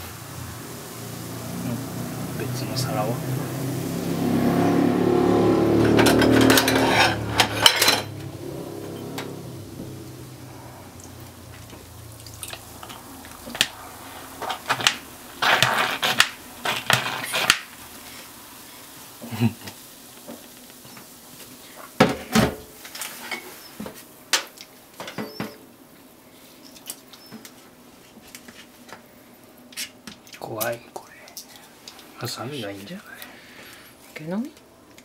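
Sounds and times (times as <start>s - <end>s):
slushy liquid rushing from bottle: 13.4s - 17.8s.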